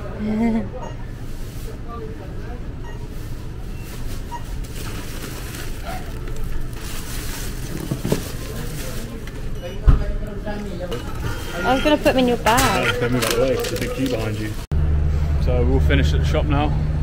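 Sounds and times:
plastic bags rustling: 3.7 - 9.6, 10.4 - 14.7.

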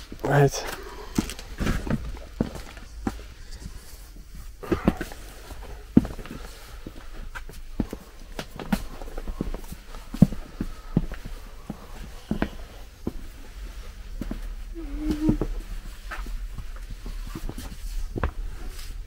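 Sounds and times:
footsteps on a hard floor: 14.2 - 19.0.

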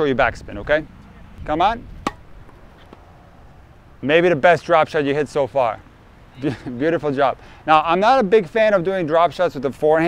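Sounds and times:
tennis racket hitting ball: 2.0 - 3.1.

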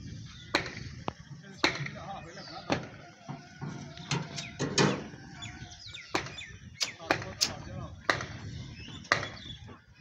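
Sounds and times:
sharp knocks and clanks: 2.7 - 5.1.

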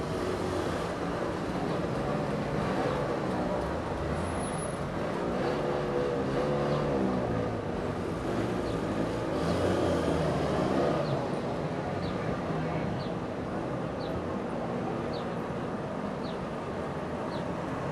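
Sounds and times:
two-stroke car engines at low revs: 0.0 - 11.5.

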